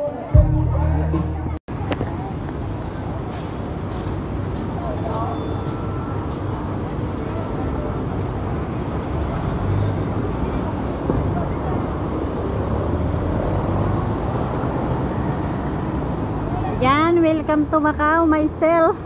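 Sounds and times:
background voices of passers-by: 0:00.0 - 0:19.0
traffic noise: 0:00.0 - 0:19.0.

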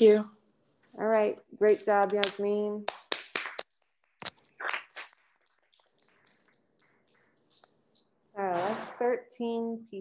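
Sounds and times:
people clapping: 0:02.1 - 0:03.8.

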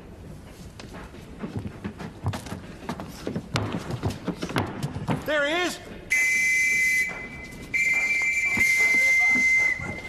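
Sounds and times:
police whistle blasts: 0:06.1 - 0:10.0.

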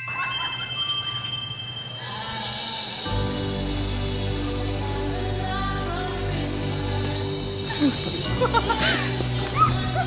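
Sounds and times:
bell-like chime tones: 0:00.0 - 0:03.1.

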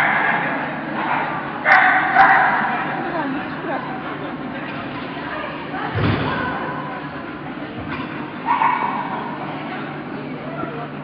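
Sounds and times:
dog barking: 0:01.0 - 0:02.8, 0:08.5 - 0:09.1.

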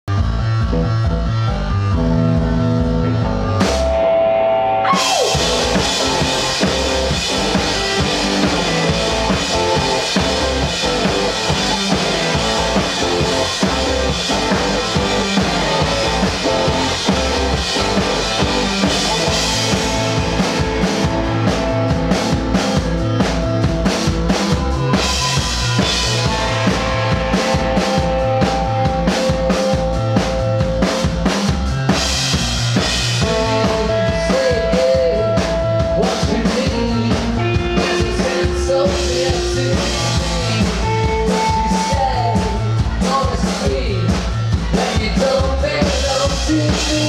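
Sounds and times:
drums and electric guitar: 0:00.0 - 0:47.0
synth and bass chords: 0:00.1 - 0:34.0.

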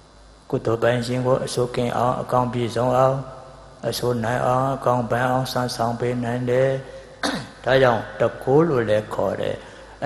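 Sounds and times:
man clearing his throat: 0:07.2 - 0:07.6.

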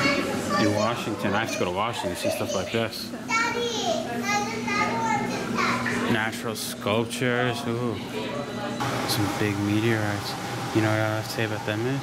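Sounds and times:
children's voices: 0:00.0 - 0:06.1
chatter of visitors: 0:00.0 - 0:11.7.

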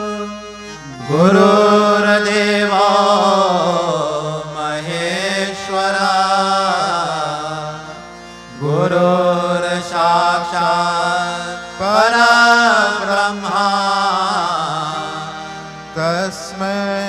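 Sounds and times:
man chanting into a microphone: 0:01.0 - 0:07.9, 0:08.6 - 0:17.0.

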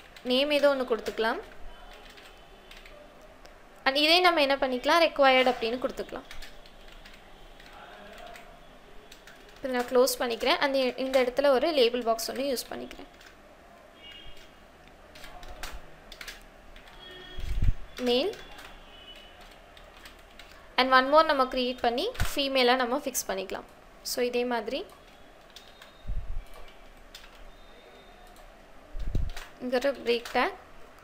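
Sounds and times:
keyboard typing: 0:00.0 - 0:03.3, 0:03.9 - 0:31.0.

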